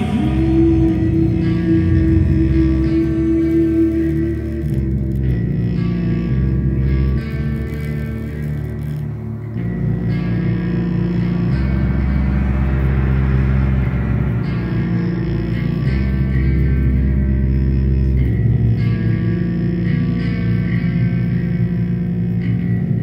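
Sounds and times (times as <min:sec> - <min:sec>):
electric guitar sustained notes: 0:00.0 - 0:23.0.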